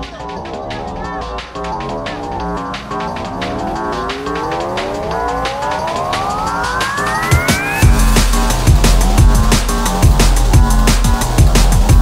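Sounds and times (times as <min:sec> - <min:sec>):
heavy bass and kick drums: 0:00.0 - 0:12.0
pulsing electronic beat: 0:00.0 - 0:12.0
rising synth tone: 0:01.8 - 0:12.0.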